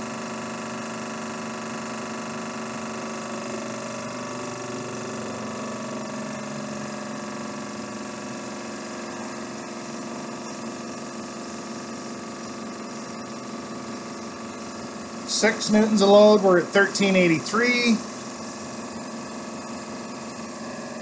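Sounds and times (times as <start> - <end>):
electric motor humming: 0.0 - 21.0.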